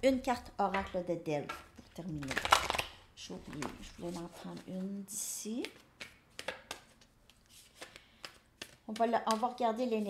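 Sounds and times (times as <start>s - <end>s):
cards being shuffled: 5.7s - 10.0s.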